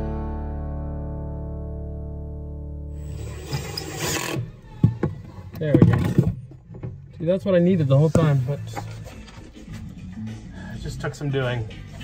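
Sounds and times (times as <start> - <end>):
strummed guitar chord: 0.0 - 2.9.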